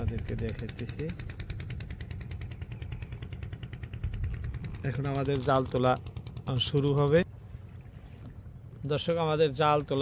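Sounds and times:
small boat engine knocking: 0:00.0 - 0:10.0.

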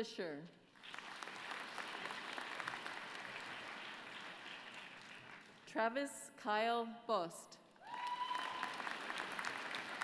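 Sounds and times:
audience applauding: 0:00.8 - 0:05.7, 0:07.9 - 0:10.0.

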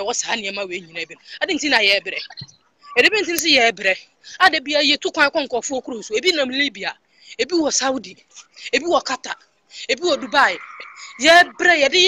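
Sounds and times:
person's voice wavering in pitch: 0:08.8 - 0:12.0.

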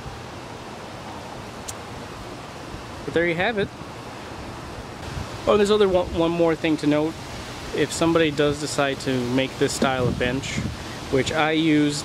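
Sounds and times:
outdoor ambient hiss: 0:00.0 - 0:12.0.

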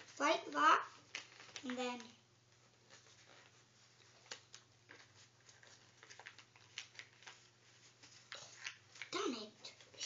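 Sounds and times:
paper being folded: 0:00.0 - 0:10.0.

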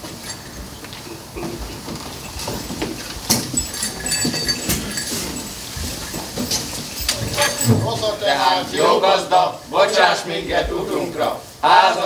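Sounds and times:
light metallic jingle: 0:00.0 - 0:09.7.

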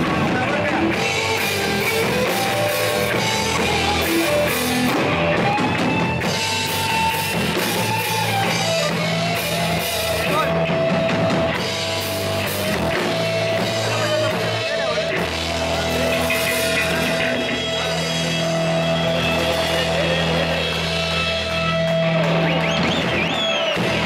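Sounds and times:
drum kit and cymbals: 0:00.0 - 0:24.0
electric guitar held notes: 0:00.0 - 0:24.0.

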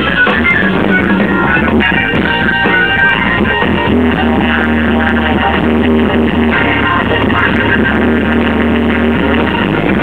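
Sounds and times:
bass guitar: 0:00.0 - 0:10.0
electric guitar: 0:00.0 - 0:10.0
rock band playing live: 0:00.0 - 0:10.0.

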